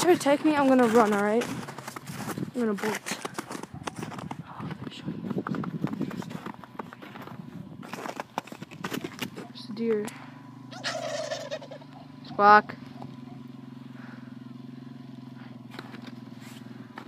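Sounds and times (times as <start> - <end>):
footsteps crunching on snow: 0.0 - 9.8, 15.4 - 17.0
low engine hum: 0.0 - 17.0
turkey call: 10.7 - 13.4.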